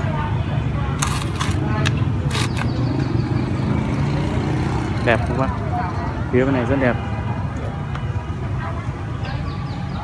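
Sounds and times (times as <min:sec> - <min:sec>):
low rumble of street traffic: 0:00.0 - 0:10.0.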